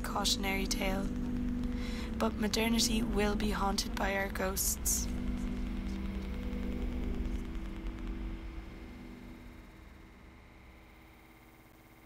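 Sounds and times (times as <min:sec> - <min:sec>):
low ambient drone: 0:00.0 - 0:12.0.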